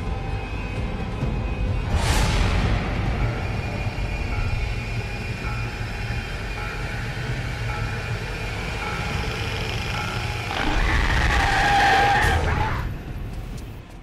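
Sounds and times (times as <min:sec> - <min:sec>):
street traffic rumbling: 0:00.0 - 0:14.0
loud shrill screech: 0:10.5 - 0:12.9.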